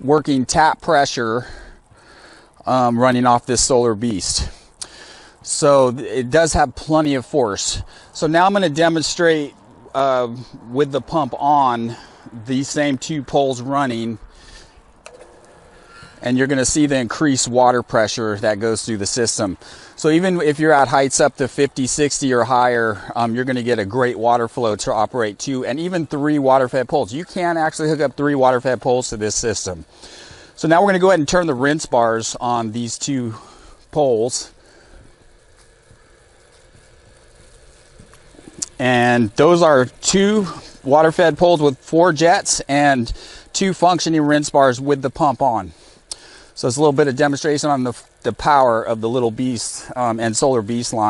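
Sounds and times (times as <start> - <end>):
faint steady hum: 0.0 - 51.0
water spraying hiss: 27.4 - 51.0.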